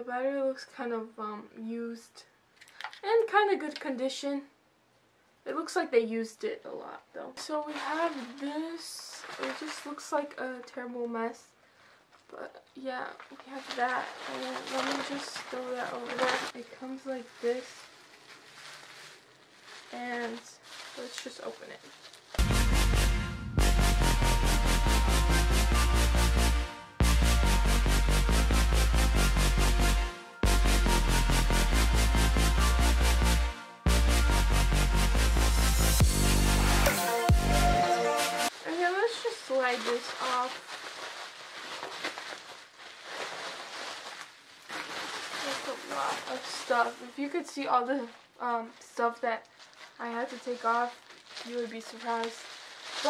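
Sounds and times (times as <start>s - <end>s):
bubble wrap rustling: 7.4s - 23.0s, 34.5s - 53.0s.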